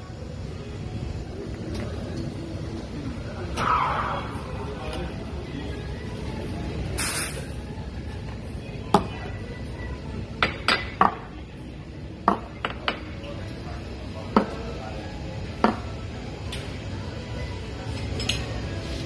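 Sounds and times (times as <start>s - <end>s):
espresso machine hiss: 7.0s - 7.5s.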